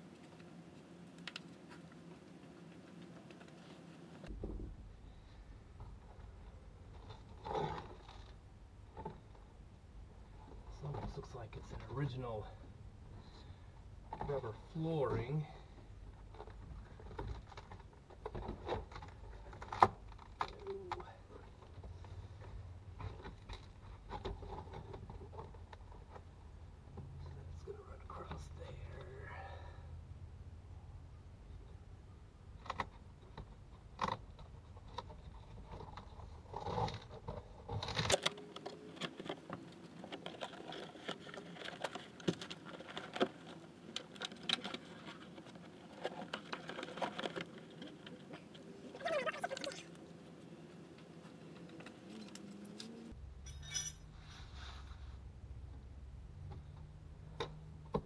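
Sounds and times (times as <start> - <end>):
tools clicking and scraping: 51.1 - 54.3.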